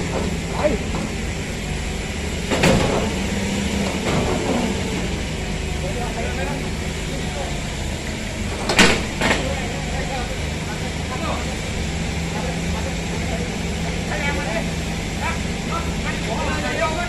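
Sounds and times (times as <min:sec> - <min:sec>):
engine idling: 0:00.0 - 0:17.0.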